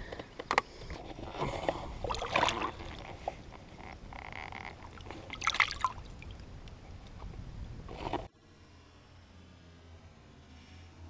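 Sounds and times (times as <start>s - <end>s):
water splashing: 1.8s - 6.6s.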